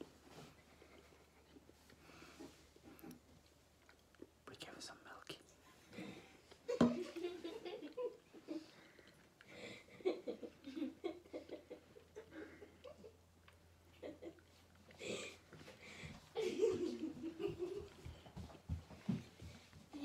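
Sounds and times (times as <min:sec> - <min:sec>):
whispered speech: 0:04.4 - 0:05.5.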